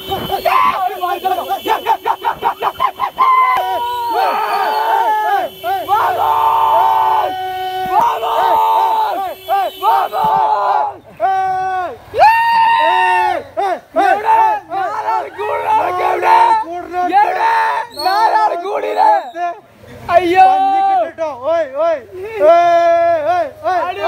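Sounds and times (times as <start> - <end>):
men shouting and chanting: 0.0 - 24.0.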